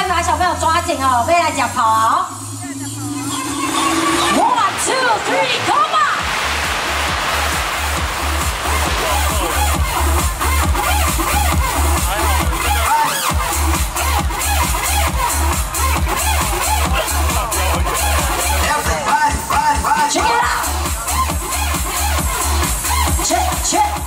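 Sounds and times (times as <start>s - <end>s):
electronic dance music: 0.0s - 24.0s
heavy kick drum: 7.1s - 12.6s.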